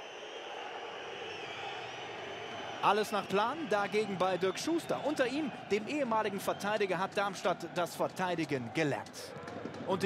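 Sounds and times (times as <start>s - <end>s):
shrill crowd whistles: 0.0s - 7.1s
crowd noise: 0.0s - 10.0s.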